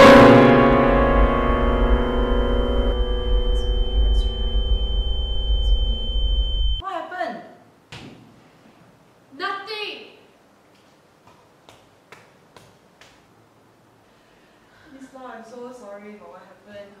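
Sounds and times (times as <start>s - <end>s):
piano keys crashing: 0.0s - 6.8s.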